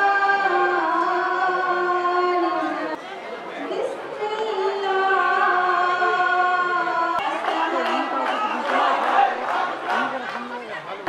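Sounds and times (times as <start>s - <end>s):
crowd chatter: 0.0s - 11.0s
group of voices singing: 5.0s - 10.2s.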